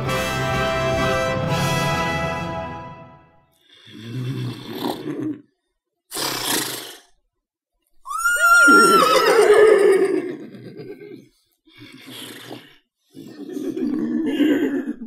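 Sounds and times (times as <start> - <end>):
person imitating horse whinny: 8.1 - 15.0.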